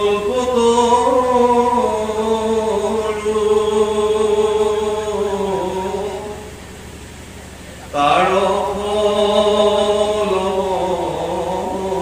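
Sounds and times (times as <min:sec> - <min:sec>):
man chanting: 0:00.0 - 0:06.6, 0:07.7 - 0:12.0.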